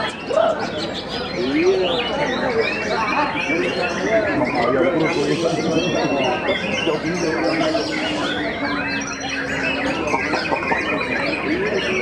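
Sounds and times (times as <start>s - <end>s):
songbirds singing in chorus: 0.0s - 12.0s.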